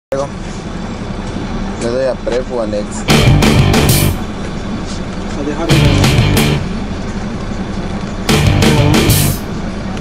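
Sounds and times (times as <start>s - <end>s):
bus engine rumble and road noise: 0.1s - 10.0s.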